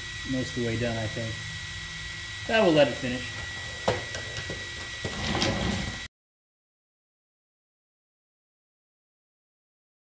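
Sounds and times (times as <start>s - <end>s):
laser engraver whine and hum: 0.0s - 6.1s.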